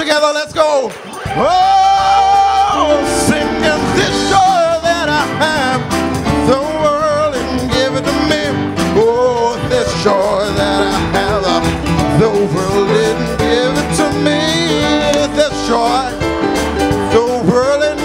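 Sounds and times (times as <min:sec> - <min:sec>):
instrumental backing: 0:01.1 - 0:18.0
congregation singing gospel song: 0:01.3 - 0:18.0.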